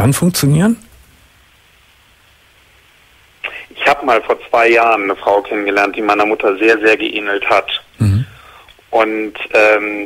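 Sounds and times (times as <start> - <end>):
telephone line hiss: 3.3 - 10.0.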